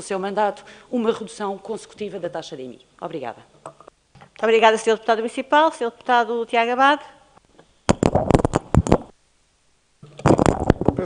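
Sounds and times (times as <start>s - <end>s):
rustling and knocks on microphone: 7.9s - 9.1s, 10.1s - 11.0s.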